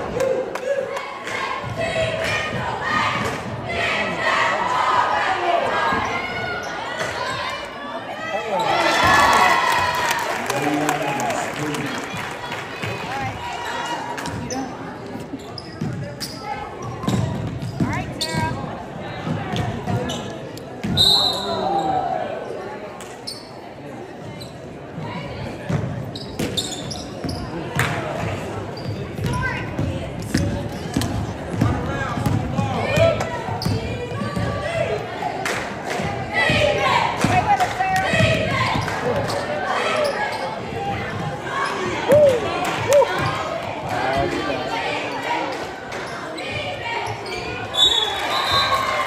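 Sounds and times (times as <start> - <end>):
voices in echoing gym: 0.0 - 49.0
referee's whistle: 20.9 - 21.7, 47.7 - 49.0.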